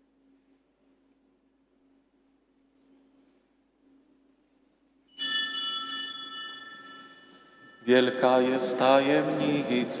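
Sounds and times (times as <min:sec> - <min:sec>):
altar bell ringing: 0:05.1 - 0:09.0.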